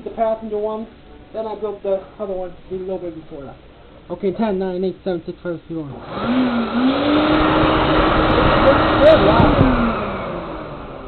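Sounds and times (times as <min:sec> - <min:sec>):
vacuum cleaner motor running: 0:06.0 - 0:11.0.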